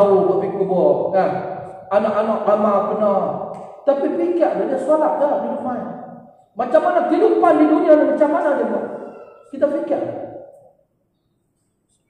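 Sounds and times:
man speaking: 0.0 - 10.4.

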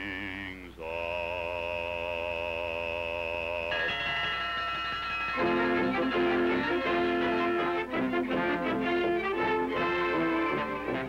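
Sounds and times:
orchestral music: 4.1 - 11.0.

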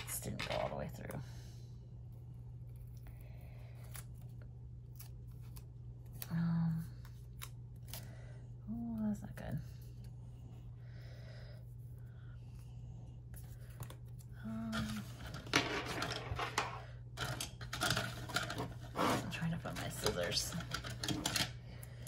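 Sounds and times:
low steady hum: 0.0 - 22.0.

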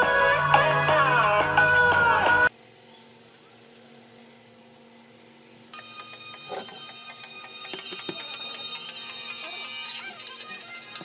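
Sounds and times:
tinny electronic music from phone: 0.0 - 2.5, 5.7 - 11.0.

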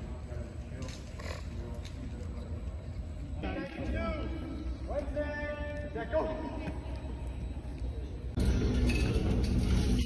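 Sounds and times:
distant voices talking: 0.0 - 8.8.

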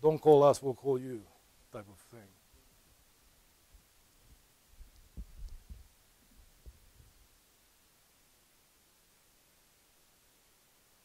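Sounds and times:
footsteps thudding: 4.8 - 7.2.

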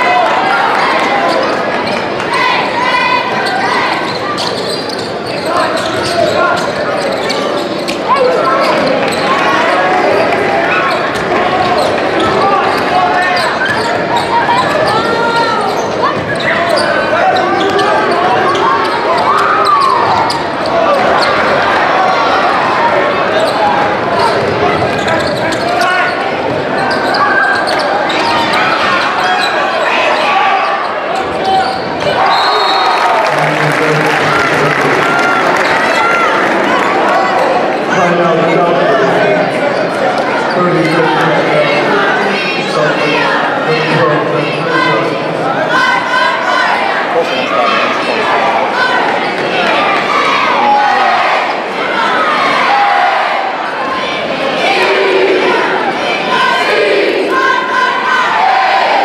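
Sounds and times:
crowd voices and shouts: 0.0 - 59.0.

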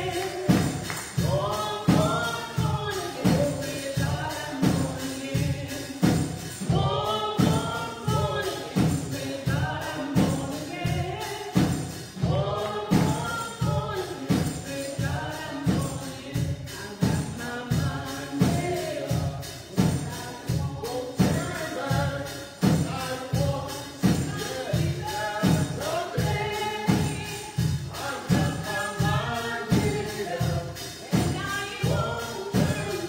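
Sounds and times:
drum kit steady beat: 0.0 - 33.0
woman singing gospel: 0.0 - 33.0.

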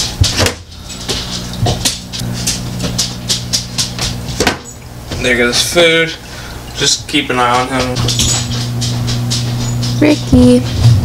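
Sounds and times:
hands clicking and rustling things: 0.0 - 5.3, 7.2 - 11.0
low electrical hum: 0.0 - 11.0.

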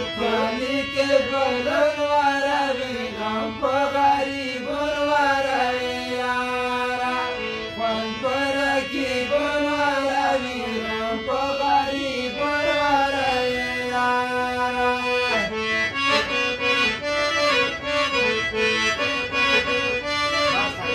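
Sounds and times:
man singing: 0.0 - 16.4
harmonium playing: 0.0 - 20.9.

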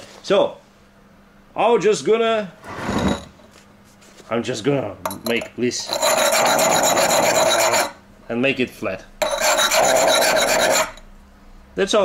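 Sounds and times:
metal plate scraping on stone: 2.6 - 3.4, 5.8 - 8.0, 9.2 - 11.0.

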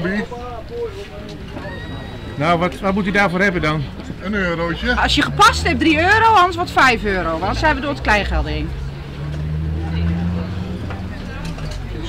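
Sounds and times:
faint background chatter: 0.0 - 12.0.

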